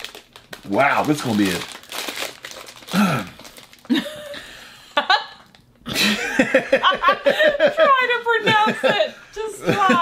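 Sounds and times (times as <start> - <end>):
plastic snack wrapper crinkling: 0.0 - 4.0.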